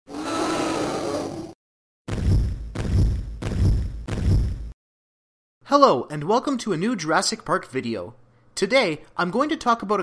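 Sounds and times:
dinosaur roar: 0.1 - 1.6.

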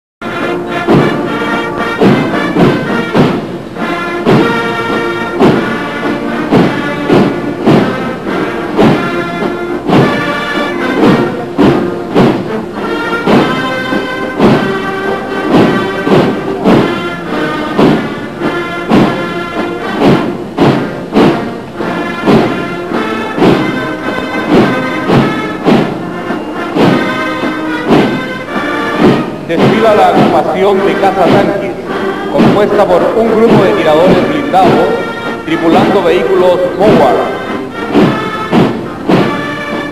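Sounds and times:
drum beat: 0.2 - 39.9
military band playing a march: 0.2 - 39.9.

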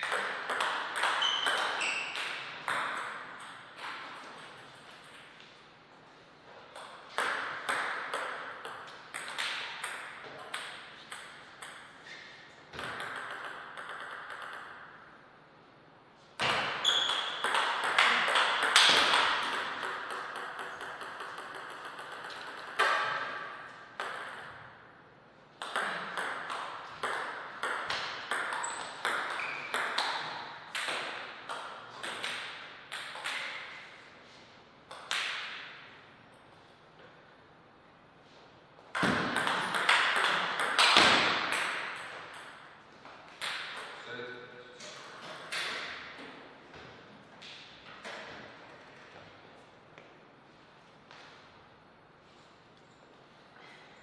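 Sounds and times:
table tennis ball clicks: 12.8 - 14.8, 17.1 - 23.0.

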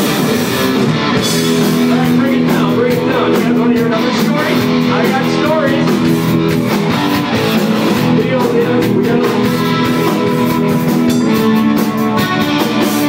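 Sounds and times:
drums: 0.0 - 13.0
electric guitar: 0.0 - 13.0
person singing: 1.6 - 6.2, 7.2 - 13.0.

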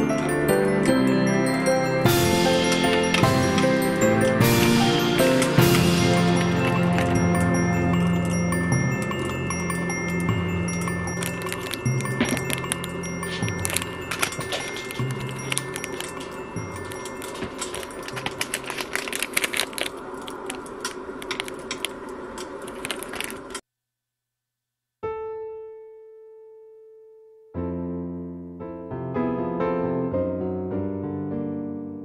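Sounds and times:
soft background music: 0.0 - 18.9
plastic bag crinkling: 5.8 - 23.6.

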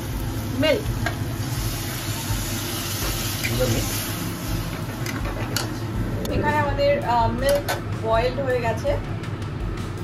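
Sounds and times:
low hum: 4.2 - 9.8.

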